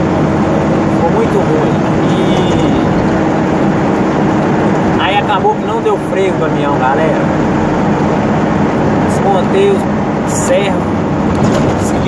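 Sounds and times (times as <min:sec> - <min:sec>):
truck diesel engine running: 0:00.0 - 0:12.0
tyre and road noise: 0:00.0 - 0:12.0.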